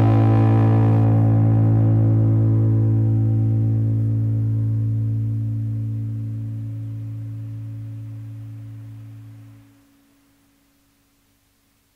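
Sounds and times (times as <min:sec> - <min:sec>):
distorted guitar and bass chord ringing: 0:00.0 - 0:10.8.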